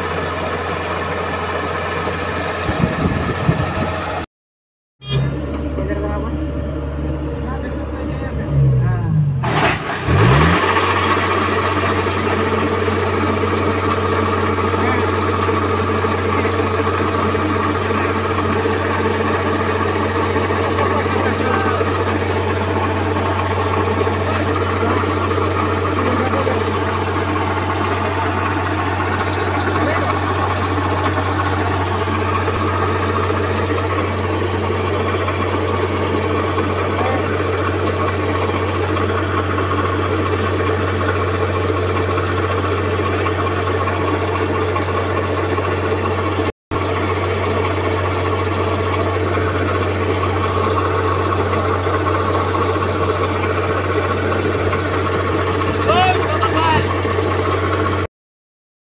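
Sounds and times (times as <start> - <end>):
combine harvester engine drone: 0.0 - 4.2, 5.0 - 58.1
auger discharging grain: 9.4 - 58.0.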